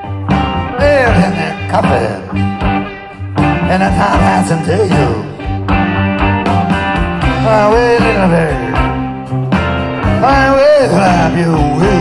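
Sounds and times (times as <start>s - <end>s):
bending lead guitar line: 0.0s - 12.0s
live blues-rock band: 0.0s - 12.0s.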